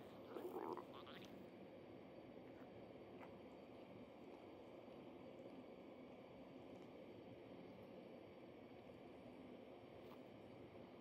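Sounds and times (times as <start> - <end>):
stomach gurgling: 0.0 - 1.3.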